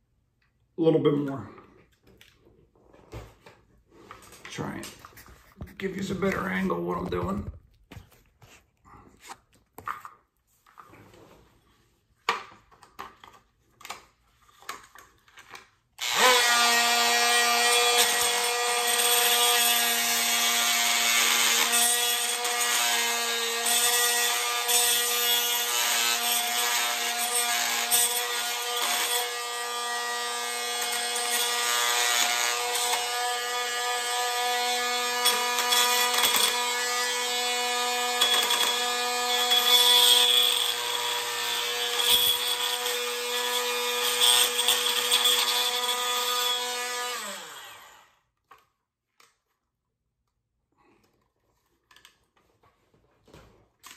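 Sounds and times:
oscillating multi-tool grinding plastic: 16.0s - 48.0s
power tool winding down: 16.0s - 48.1s.

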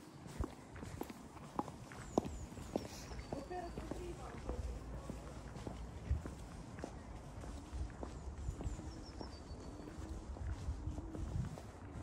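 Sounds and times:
footsteps on stone paving: 0.0s - 12.0s.

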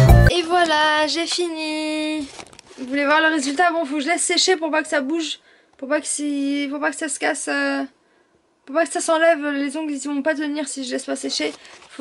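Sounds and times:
woman talking: 0.3s - 8.0s, 8.6s - 12.0s.

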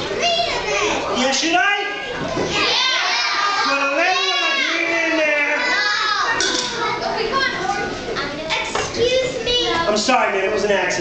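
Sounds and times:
children calling and chattering: 0.0s - 10.5s.

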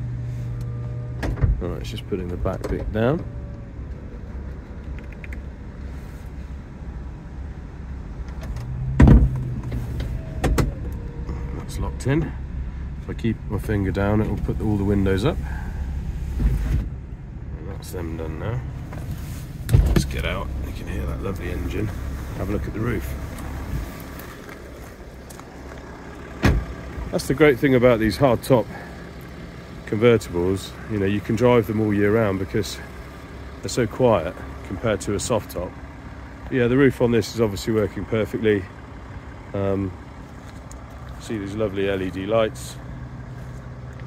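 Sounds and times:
diesel engine idling: 0.0s - 44.0s
car door shutting: 0.6s - 1.6s, 8.2s - 12.3s, 14.1s - 17.0s, 18.7s - 27.2s.

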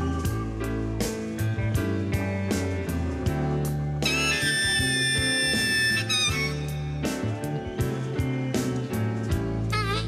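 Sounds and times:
drum beats: 0.0s - 10.0s
live blues-rock band: 0.0s - 10.0s
harmonica note bending: 4.0s - 7.2s.

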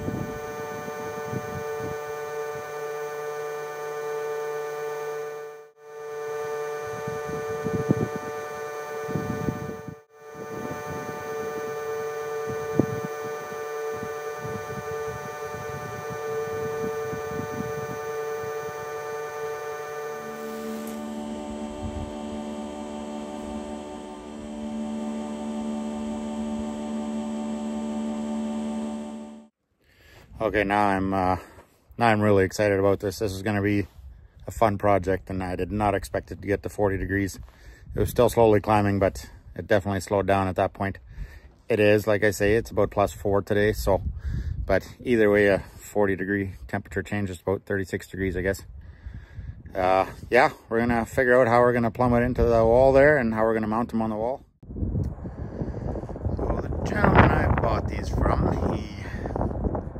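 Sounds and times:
leaf blower running: 0.0s - 29.5s, 55.0s - 59.9s.

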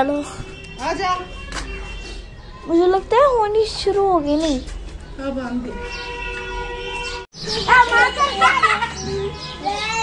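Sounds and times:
young children calling and crying: 0.0s - 10.0s.

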